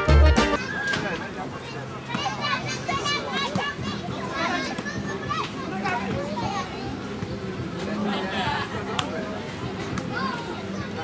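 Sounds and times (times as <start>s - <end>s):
children playing and calling out: 0.0s - 11.0s.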